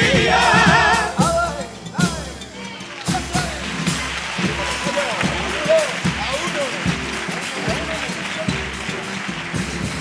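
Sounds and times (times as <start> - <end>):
bass drum beating: 0.0 - 2.5.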